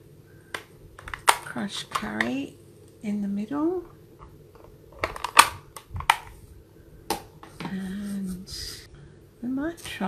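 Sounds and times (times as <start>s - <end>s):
plastic snap: 0.5s - 2.4s, 4.2s - 6.3s.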